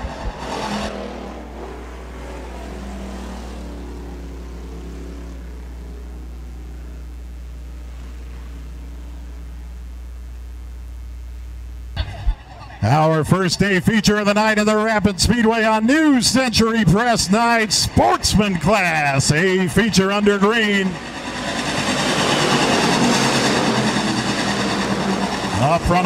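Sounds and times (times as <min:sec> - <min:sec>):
race car engines droning: 0:00.0 - 0:10.0, 0:12.0 - 0:26.0
low rumble: 0:03.7 - 0:12.9.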